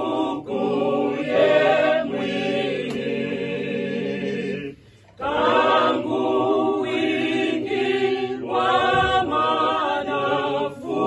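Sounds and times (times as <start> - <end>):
small choir singing a cappella: 0.0 - 11.0.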